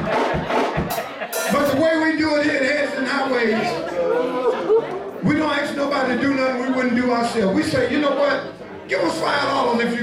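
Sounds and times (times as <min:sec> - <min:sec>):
man talking: 0:01.5 - 0:03.8, 0:05.2 - 0:10.0.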